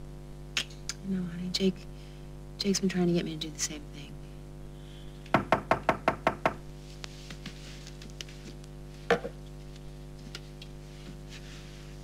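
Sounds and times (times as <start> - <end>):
knocking on a door: 5.3 - 6.6.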